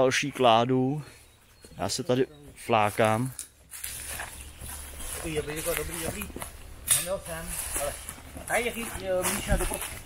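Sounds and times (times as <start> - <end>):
man speaking: 1.8 - 3.4, 5.2 - 10.0.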